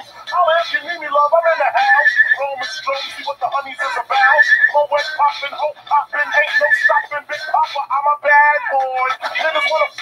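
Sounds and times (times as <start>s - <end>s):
high-pitched voice sing-song: 6.2s - 10.0s.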